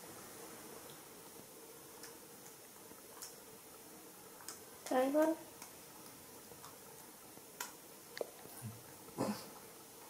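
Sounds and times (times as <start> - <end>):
faint clicks: 4.4 - 4.6.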